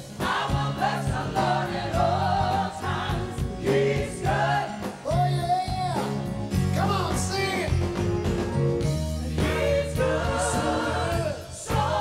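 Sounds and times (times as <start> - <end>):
choir and congregation singing: 0.0 - 5.4, 9.2 - 12.0
band playing steady beat: 0.0 - 12.0.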